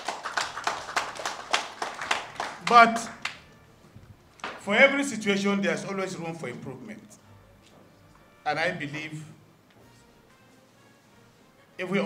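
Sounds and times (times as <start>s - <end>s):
people clapping: 0.0s - 3.6s, 4.4s - 4.6s.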